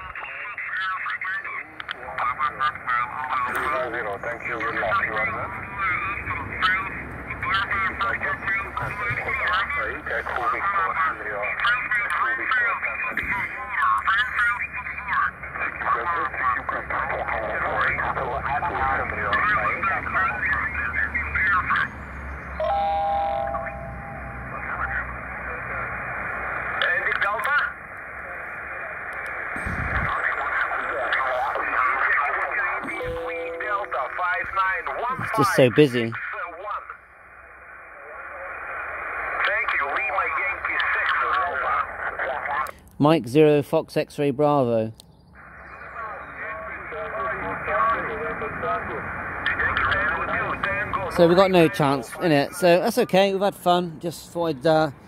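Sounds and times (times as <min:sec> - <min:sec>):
steady radio tone: 0:00.0 - 0:42.8, 0:45.4 - 0:54.9
warbling radio voices: 0:00.0 - 0:42.8, 0:45.4 - 0:55.0
radio band noise: 0:00.0 - 0:43.9, 0:45.4 - 0:55.0.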